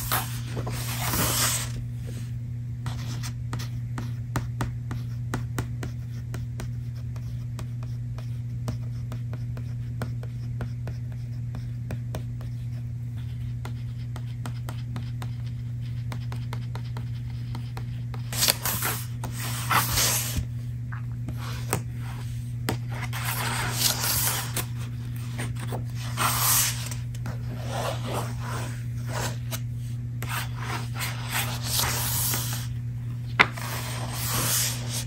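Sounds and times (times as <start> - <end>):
paper rustling: 0.0 - 1.8, 18.3 - 20.4, 22.8 - 29.6, 30.2 - 32.7, 33.3 - 35.0
steady low hum: 0.0 - 35.0
fingers scratching and tapping book: 13.3 - 20.4.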